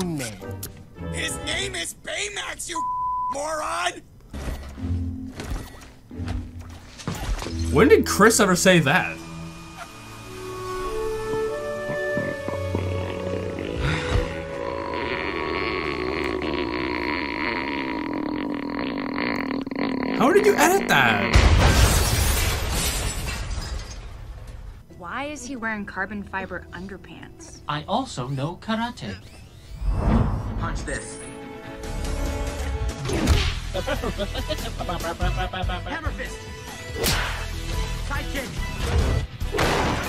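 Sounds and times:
film soundtrack music: 4.4 - 15.0, 29.9 - 39.6.

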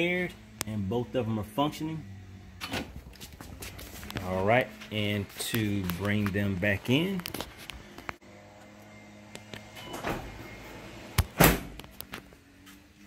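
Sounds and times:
motors humming: 0.0 - 13.0.

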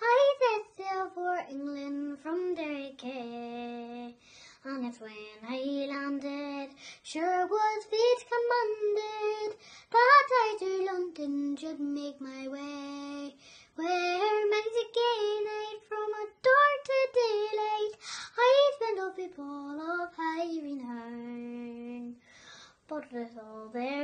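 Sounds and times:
girl singing unaccompanied: 0.0 - 24.0.

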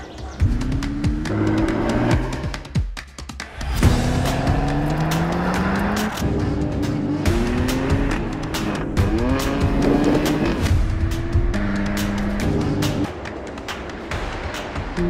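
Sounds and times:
background music with beat: 0.0 - 15.0
car engine accelerating: 0.1 - 2.8, 3.7 - 13.1.

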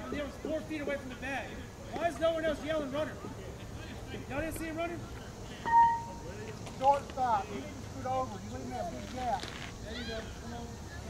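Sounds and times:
voices calling out: 0.0 - 11.0.

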